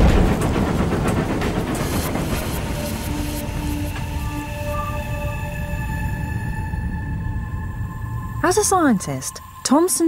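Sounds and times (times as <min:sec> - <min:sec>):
steam locomotive running: 0:00.0 - 0:06.9.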